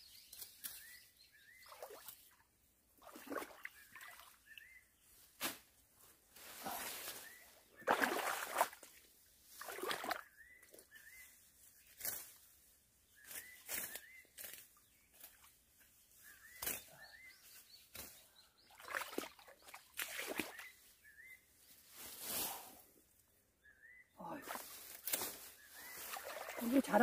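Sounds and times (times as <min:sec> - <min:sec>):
shrub leaves and branches rustling: 0:05.0 - 0:07.8, 0:10.8 - 0:18.4, 0:20.3 - 0:22.9, 0:24.2 - 0:27.0
bird chirping: 0:16.1 - 0:21.7, 0:23.6 - 0:24.3, 0:25.5 - 0:27.0.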